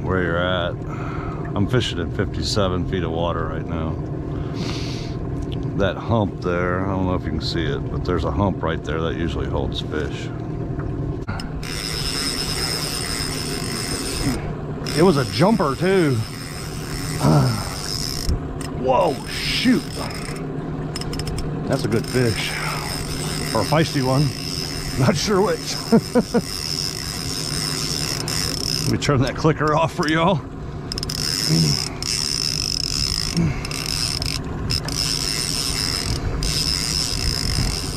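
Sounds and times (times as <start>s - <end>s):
outboard motor humming: 0.0s - 37.9s
fishing reel clicker ratcheting: 11.4s - 30.2s, 30.9s - 37.9s.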